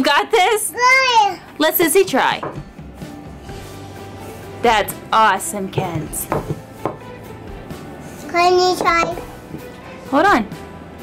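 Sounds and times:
rolling pin rolling over dough: 0:02.4 - 0:09.8
rolling pin knocking on tabletop: 0:05.7 - 0:07.1.

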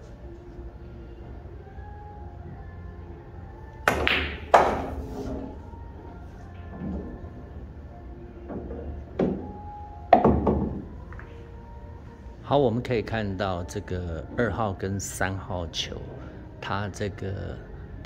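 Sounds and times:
cue tip striking ball: 0:03.8 - 0:05.6, 0:08.5 - 0:11.3
pool balls clacking: 0:03.8 - 0:05.6, 0:08.5 - 0:11.4
ball knocking off cushions: 0:03.9 - 0:05.5, 0:10.2 - 0:10.9.

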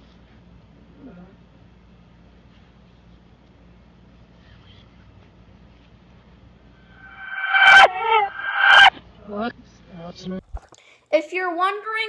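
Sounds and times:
reversed dog barking: 0:07.0 - 0:08.9.

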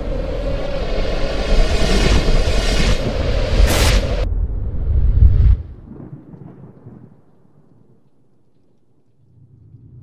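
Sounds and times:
low swell: 0:00.0 - 0:05.9
low rumbling boom: 0:03.0 - 0:07.3.

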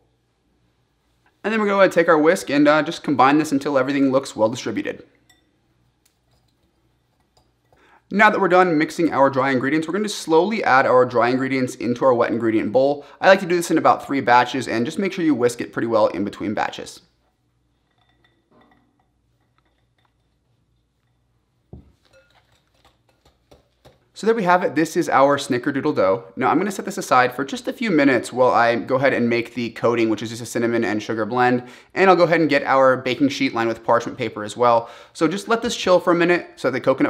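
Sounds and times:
whisk clinking against glass bowl: 0:05.2 - 0:05.6, 0:17.3 - 0:21.3, 0:22.0 - 0:24.0.

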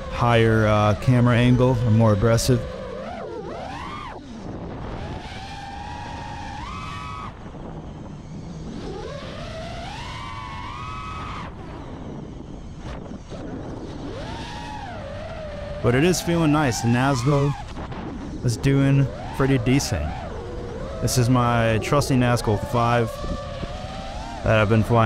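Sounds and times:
quadcopter motors whining: 0:00.0 - 0:25.0.

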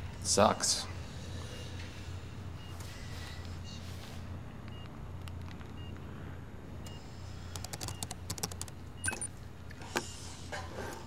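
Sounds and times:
steady low hum: 0:00.0 - 0:11.0
laptop keyboard typing: 0:07.5 - 0:09.3
faint short beeps: 0:09.0 - 0:09.3.

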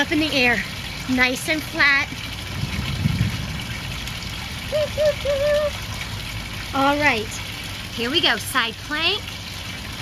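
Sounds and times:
fountain water trickling: 0:00.0 - 0:10.0
low rumble: 0:02.4 - 0:05.6
voice-like pitched notes: 0:04.7 - 0:05.8.

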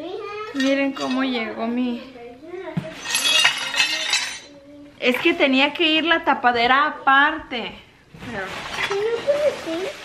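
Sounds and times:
ceramic shards clinking and rattling: 0:00.5 - 0:01.4, 0:02.9 - 0:04.5.

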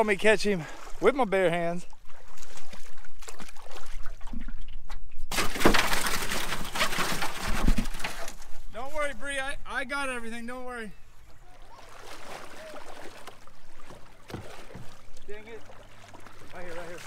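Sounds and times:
water splashing beside canoe: 0:00.0 - 0:09.2, 0:11.0 - 0:17.0.

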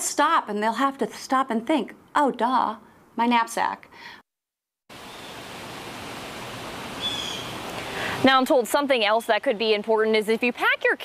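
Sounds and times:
outdoor background hiss: 0:00.0 - 0:04.2, 0:04.9 - 0:11.0.

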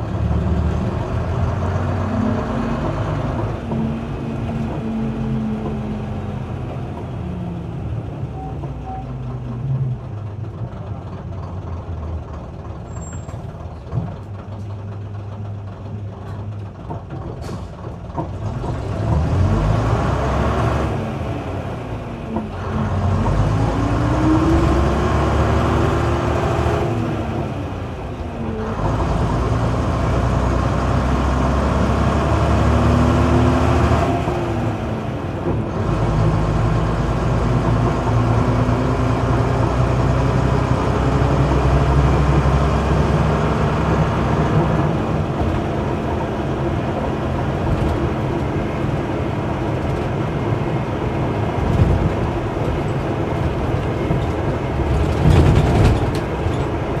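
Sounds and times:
bus diesel engine revving: 0:00.0 - 0:57.0.

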